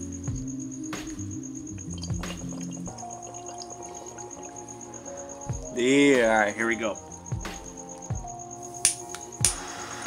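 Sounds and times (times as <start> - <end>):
background music with held tones: 0.0 - 10.0.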